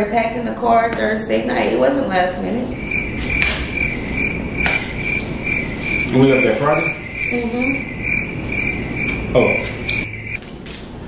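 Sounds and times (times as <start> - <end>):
high-pitched chirp: 2.7 - 10.4.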